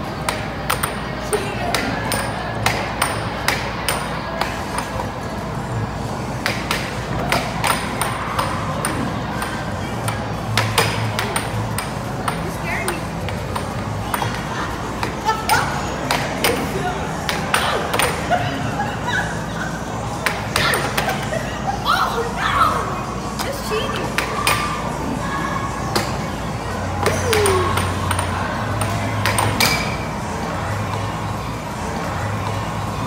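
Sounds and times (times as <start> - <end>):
air hockey puck clacking: 0.2 - 5.1, 6.4 - 18.3, 27.0 - 30.1.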